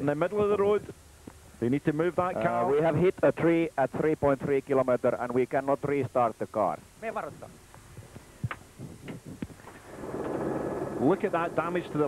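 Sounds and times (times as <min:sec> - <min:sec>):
steady rumbling noise: 0:05.4 - 0:12.0.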